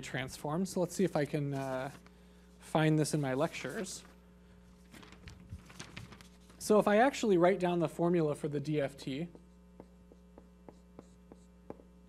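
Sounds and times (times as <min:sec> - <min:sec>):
faint electrical mains hum: 0:00.0 - 0:12.0
marker writing on whiteboard: 0:09.3 - 0:11.9.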